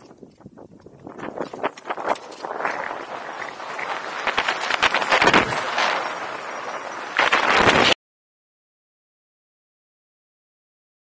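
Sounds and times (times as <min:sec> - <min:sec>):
wind rushing on microphone: 0:00.0 - 0:08.0.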